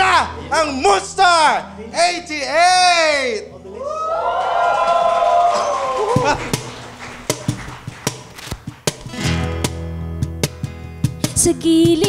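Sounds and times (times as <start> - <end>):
acoustic guitars and bass guitar: 0.0 - 3.7, 6.2 - 12.0.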